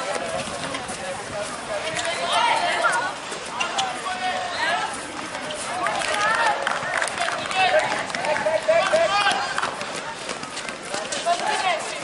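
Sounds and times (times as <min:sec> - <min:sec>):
boys shouting: 0:02.1 - 0:03.2, 0:07.3 - 0:09.7.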